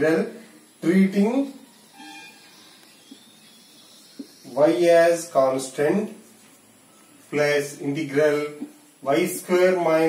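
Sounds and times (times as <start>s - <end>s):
room tone hiss: 0.0s - 10.0s
marker squeaking on whiteboard: 1.9s - 4.7s.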